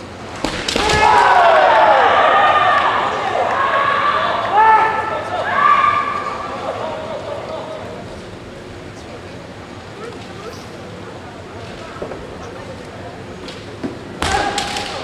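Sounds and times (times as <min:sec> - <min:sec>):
bamboo swords cracking: 0:00.4 - 0:01.2, 0:14.2 - 0:15.0
fencers shouting: 0:00.5 - 0:07.4, 0:14.2 - 0:15.0.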